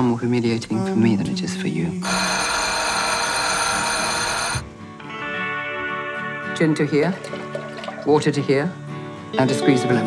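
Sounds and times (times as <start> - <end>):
soft guitar music: 4.6 - 10.0.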